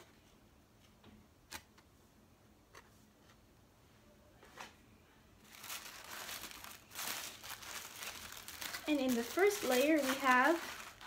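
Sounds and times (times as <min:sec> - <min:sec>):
tissue paper crinkling: 0:05.4 - 0:11.0.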